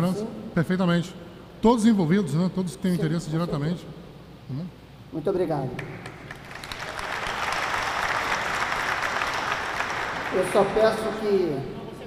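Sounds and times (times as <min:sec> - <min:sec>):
audience applauding: 0:05.8 - 0:11.4.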